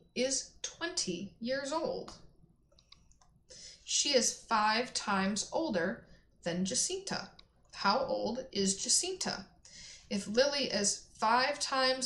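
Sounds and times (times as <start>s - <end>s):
soft breath: 3.5s - 3.9s, 9.6s - 10.1s
person speaking: 10.1s - 12.0s.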